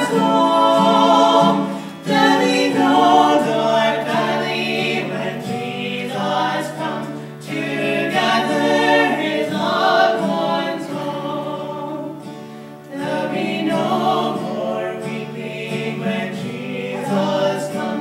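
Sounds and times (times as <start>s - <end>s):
acoustic guitar strumming: 0.0s - 18.0s
people singing a hymn in harmony: 0.0s - 18.0s.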